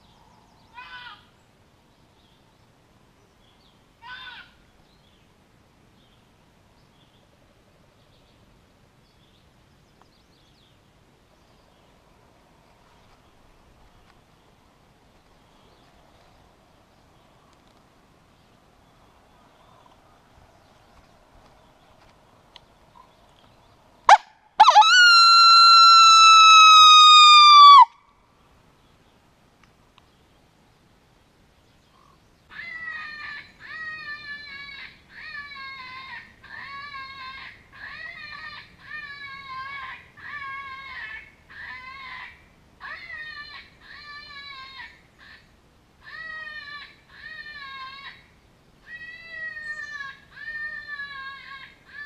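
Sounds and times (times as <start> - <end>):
coyote howling: 24.6 - 27.9.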